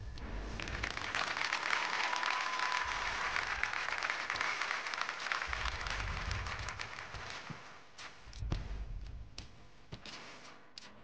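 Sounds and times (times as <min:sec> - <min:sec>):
audience applauding: 0:00.6 - 0:07.8.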